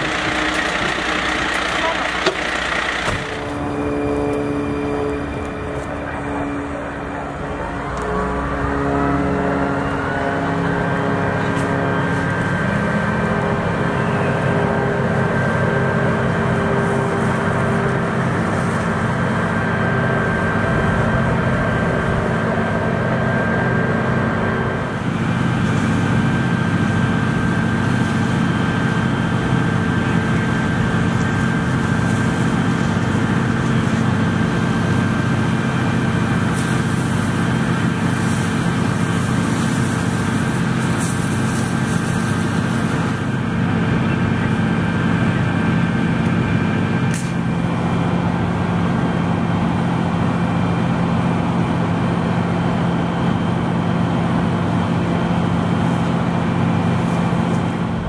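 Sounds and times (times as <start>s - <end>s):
fire engine pump running: 0.0s - 58.0s
water spraying from hose nozzle: 30.9s - 43.3s.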